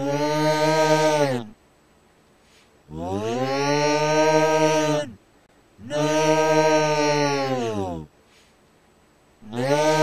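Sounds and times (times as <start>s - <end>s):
creature yelling: 0.0s - 1.6s, 2.9s - 5.2s, 5.8s - 8.1s, 9.4s - 10.0s.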